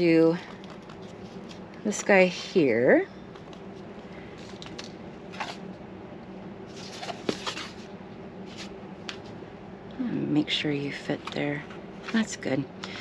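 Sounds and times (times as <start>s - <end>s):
rustling and scraping of fabric: 6.7s - 8.8s.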